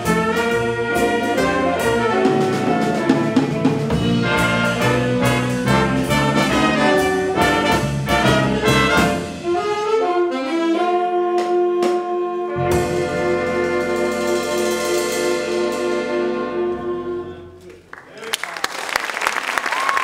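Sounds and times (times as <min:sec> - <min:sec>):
jazz big band playing: 0:00.0 - 0:17.8.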